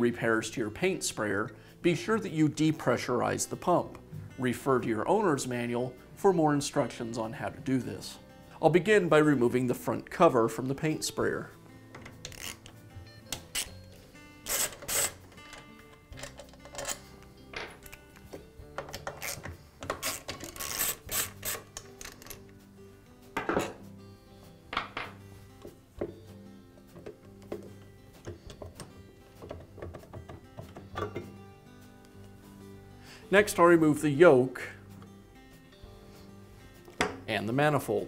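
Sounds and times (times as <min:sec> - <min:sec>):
background music: 0:00.0 - 0:38.0.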